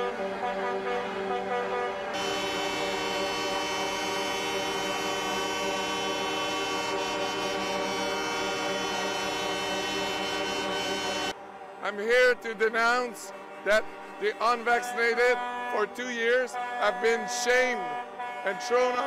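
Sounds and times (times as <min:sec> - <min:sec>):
truck air horns blaring: 0:00.0 - 0:19.0.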